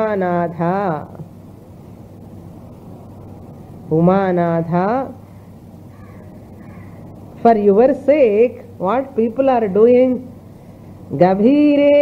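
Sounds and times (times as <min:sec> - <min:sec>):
low background hum: 0:00.0 - 0:12.0
faint bird calls: 0:05.9 - 0:07.1.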